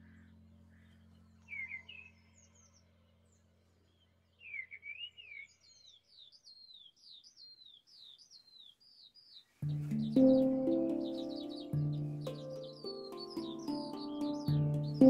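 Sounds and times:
songbird singing: 0.0 - 15.0
low harp notes: 9.6 - 15.0.

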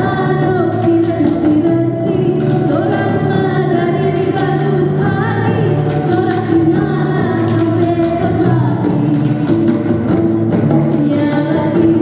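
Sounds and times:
woman singing: 0.0 - 9.9, 10.8 - 12.0
acoustic guitar: 0.0 - 12.0
hand drums: 0.0 - 12.0.

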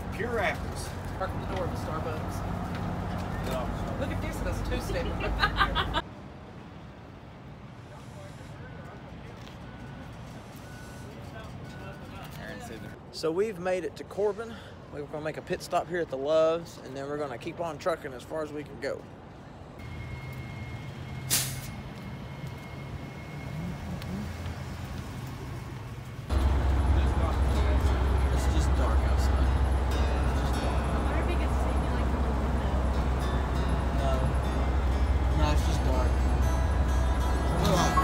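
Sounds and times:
bus engine and road rumble: 0.0 - 38.0.

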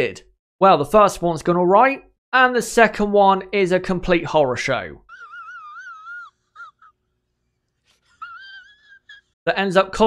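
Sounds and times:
man whimpering: 5.1 - 7.0, 8.0 - 9.4.

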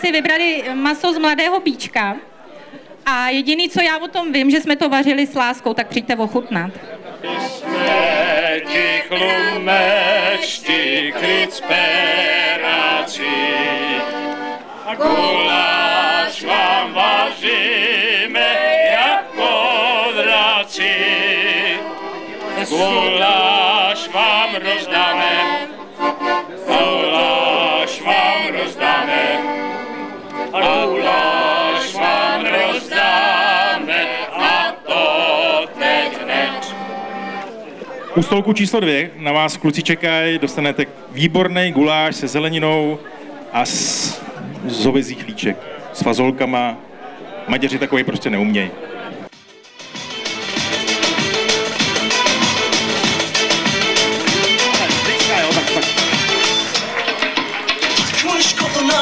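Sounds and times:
accordion: 4.6 - 37.9, 49.2 - 59.0
group singing: 7.2 - 37.6, 51.0 - 59.0.

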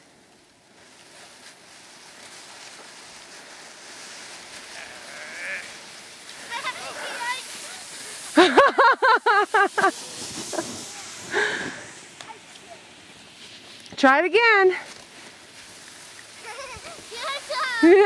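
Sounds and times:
sleds sliding over snow: 0.0 - 18.0
person laughing loudly: 8.3 - 11.6, 17.8 - 18.0.

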